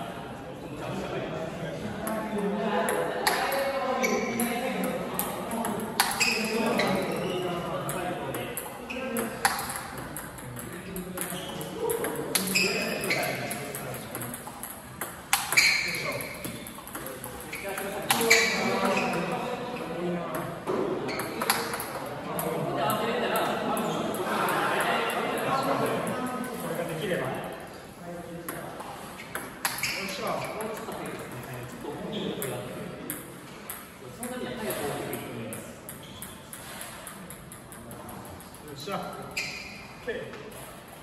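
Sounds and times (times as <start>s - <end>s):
people talking: 0.0s - 14.7s, 15.8s - 33.4s, 34.0s - 36.4s
ball bouncing on table: 2.8s - 7.2s, 7.8s - 19.4s, 20.2s - 22.5s, 28.5s - 31.6s, 32.4s - 38.6s
table tennis balls clicking off paddles: 2.9s - 19.4s, 20.3s - 22.6s, 28.5s - 31.8s, 32.4s - 39.7s.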